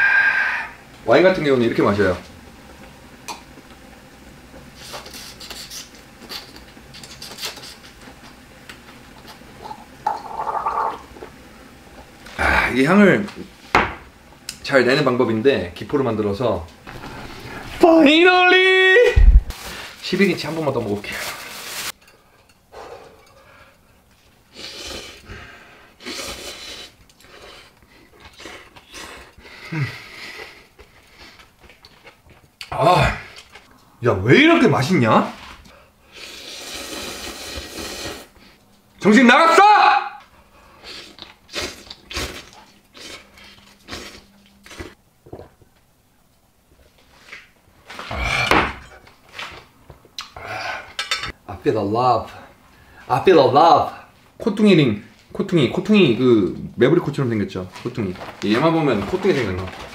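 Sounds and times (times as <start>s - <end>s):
man slurping and gurgling wine: 9.6s - 11.1s, 36.1s - 38.4s
person slurping noodles: 24.5s - 25.3s, 26.0s - 27.7s, 36.1s - 38.4s, 40.8s - 45.0s.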